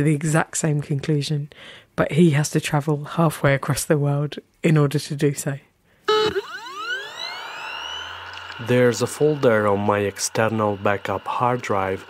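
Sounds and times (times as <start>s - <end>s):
electronic tones sweeping upward: 6.1s - 12.0s
low hum: 6.1s - 12.0s.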